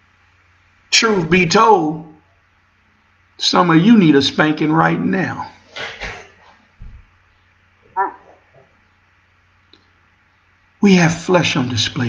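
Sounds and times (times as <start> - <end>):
low steady hum: 0.0 - 12.0
high-pitched animal cry: 8.0 - 8.5.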